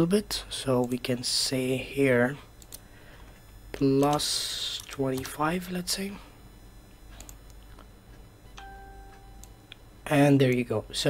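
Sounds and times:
faint steady beep: 8.4s - 10.2s.

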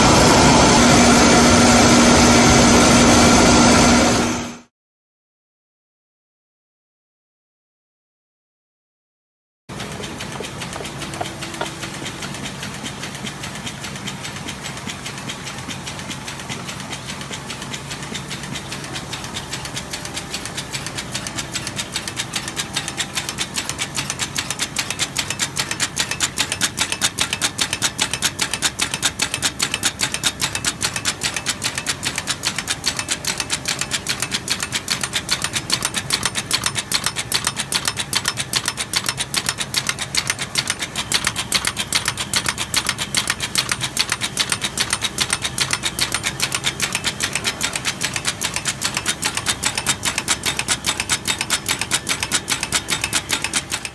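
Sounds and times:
low machine hum: 0.0s - 4.6s, 9.7s - 26.5s
machine clattering: 9.7s - 53.9s.

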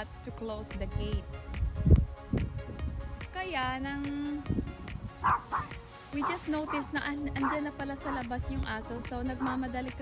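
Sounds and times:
background music: 0.0s - 10.0s
dog barking: 5.2s - 8.2s.

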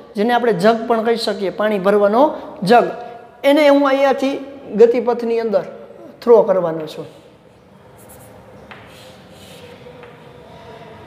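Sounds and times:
high chalk scrape: 7.0s - 11.0s
chalk scratching on blackboard: 7.9s - 10.2s.

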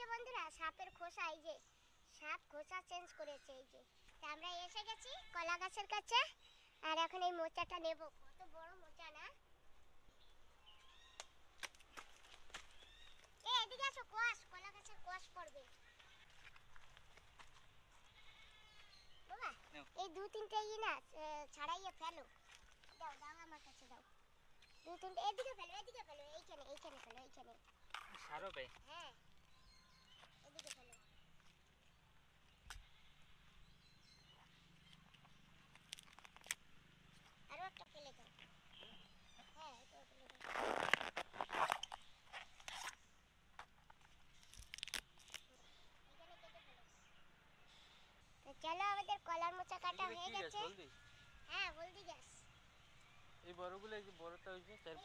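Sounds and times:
crisp snaps of tearing bract: 11.1s - 12.9s, 30.2s - 30.9s, 34.9s - 36.7s, 40.3s - 45.6s.

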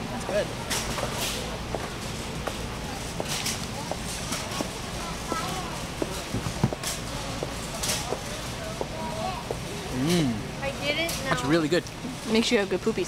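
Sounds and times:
murmur of shoppers' voices: 0.0s - 13.0s.

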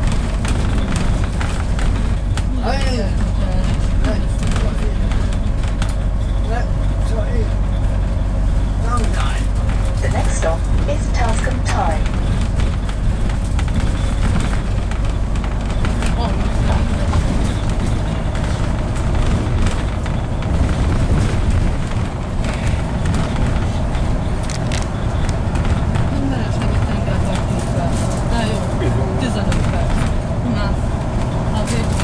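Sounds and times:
bus engine and road rumble: 0.0s - 32.0s.

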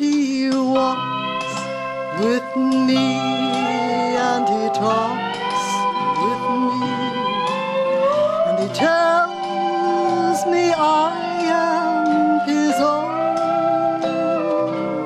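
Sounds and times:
instrumental backing: 0.0s - 15.0s
woman singing a hymn: 2.1s - 14.7s.

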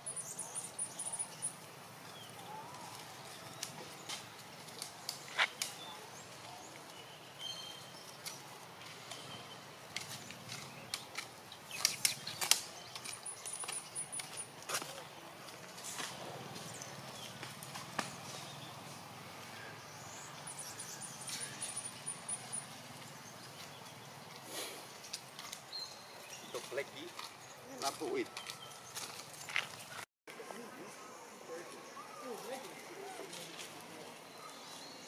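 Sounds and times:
faint high chirping trill: 0.0s - 1.6s, 20.4s - 22.8s
dry leaves crackling and rustling: 1.6s - 19.9s, 31.6s - 34.4s.

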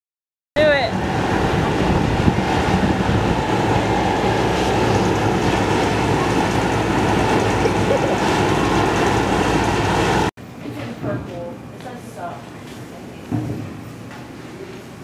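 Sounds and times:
loud steady rumbling: 0.6s - 10.3s.

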